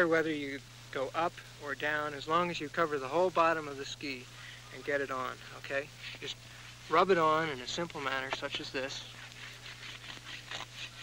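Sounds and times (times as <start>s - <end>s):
steady low hum: 0.0s - 11.0s
wax scraping on ski: 8.3s - 11.0s.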